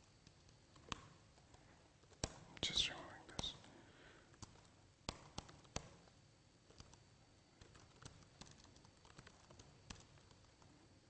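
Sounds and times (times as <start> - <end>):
laptop keyboard clicks: 0.2 - 1.5, 2.1 - 2.4, 4.4 - 6.1, 6.7 - 7.0, 7.6 - 10.7
whispered mutter: 2.5 - 3.8.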